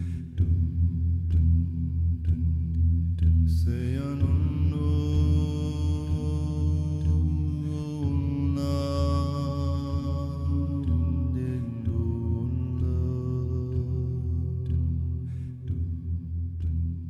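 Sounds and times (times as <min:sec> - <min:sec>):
deep low hum: 0:00.0 - 0:17.0
male voices singing drone chords: 0:03.3 - 0:17.0.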